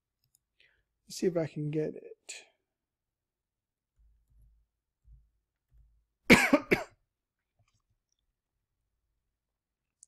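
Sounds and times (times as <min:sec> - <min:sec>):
person coughing: 0:06.3 - 0:07.0.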